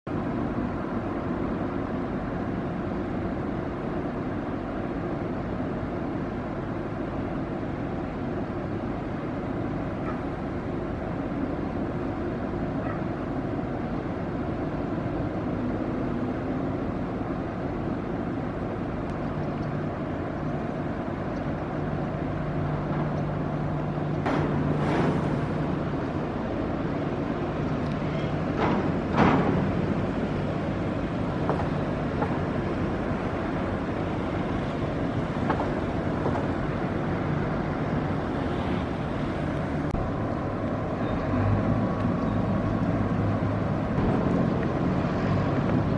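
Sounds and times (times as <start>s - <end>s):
boat running noise: 0.0s - 45.9s.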